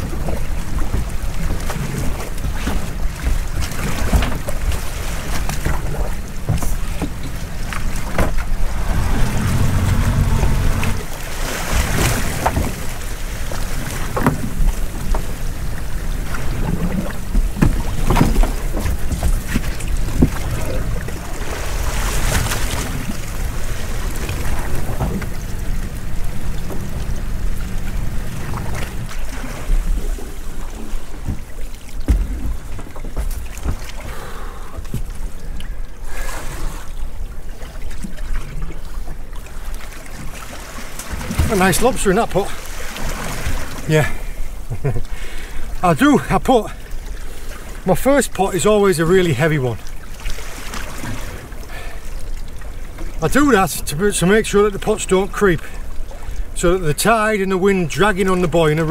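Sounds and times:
knocks and splashes: 0.0 - 35.7, 37.5 - 45.1, 49.6 - 53.6
sea washing around boat: 0.0 - 58.9
wind buffeting microphone: 5.6 - 31.4.

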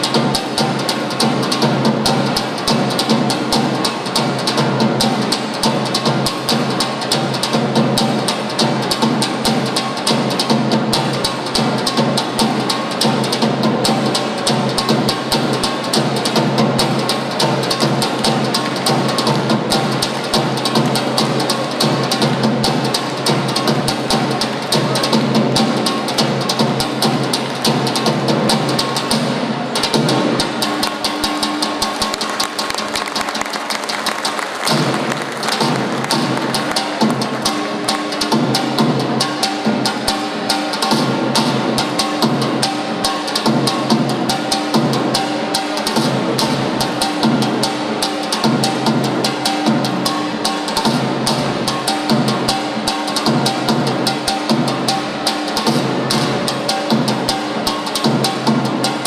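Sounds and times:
bass drum beating fast rhythm: 0.0 - 59.0
folk dance music: 0.0 - 59.0.

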